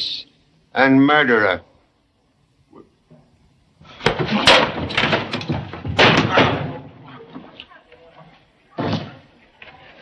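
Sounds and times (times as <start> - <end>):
door slamming shut: 4.0 - 7.0.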